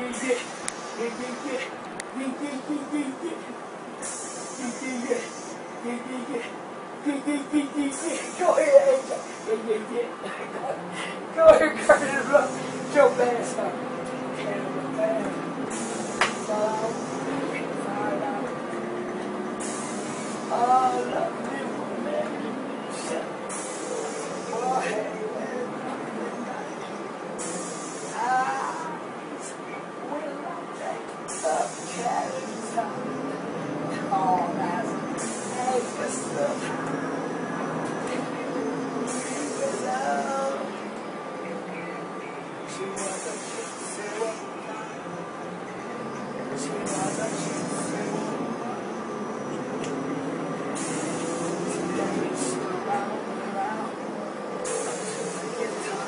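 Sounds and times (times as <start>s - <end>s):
bus interior rumble and hiss: 0.0s - 56.0s
faint voices: 0.0s - 56.0s
burst of air hiss: 4.0s - 5.6s, 15.7s - 17.3s, 19.6s - 20.6s, 23.5s - 24.7s, 27.4s - 28.2s, 35.2s - 36.4s, 50.8s - 52.6s, 54.6s - 55.6s.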